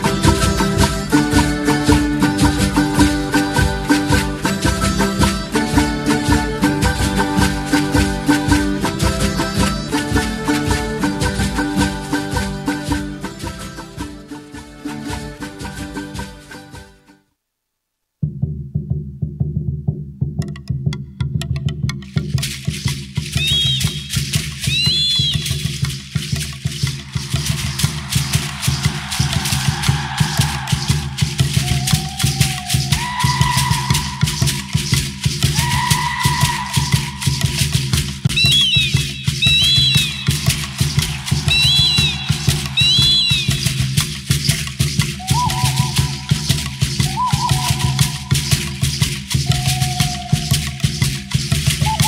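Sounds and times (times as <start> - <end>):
shaking rattles: 22.0 - 52.0
high whistle-like glides: 23.4 - 25.6, 26.9 - 37.7, 38.3 - 48.7, 49.3 - 50.9, 51.8 - 52.0
held higher tones: 23.4 - 25.7, 26.8 - 52.0.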